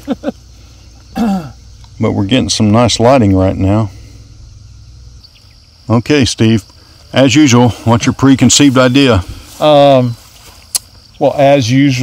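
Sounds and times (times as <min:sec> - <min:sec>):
faint low rumble: 0:00.0 - 0:11.4
high-pitched insect drone: 0:00.0 - 0:12.0
man speaking: 0:01.9 - 0:04.0, 0:05.9 - 0:10.3, 0:11.2 - 0:12.0.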